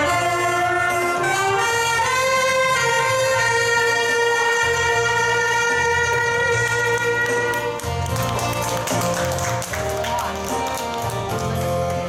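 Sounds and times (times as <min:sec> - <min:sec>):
wind instrument melody: 0:00.0 - 0:12.0
listeners clapping along: 0:06.6 - 0:12.0.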